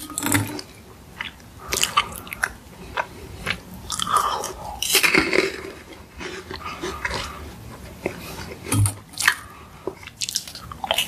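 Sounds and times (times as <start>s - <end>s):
meringue cookie crunching: 0.0s - 11.0s.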